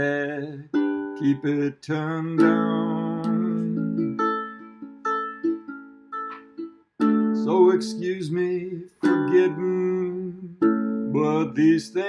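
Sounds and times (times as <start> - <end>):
ukulele strumming chords: 0.0 - 12.0.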